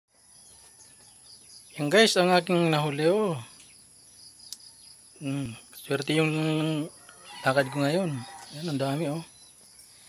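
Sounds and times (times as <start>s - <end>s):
insects trilling: 0.1s - 10.0s
man speaking: 1.8s - 3.5s, 5.2s - 9.3s.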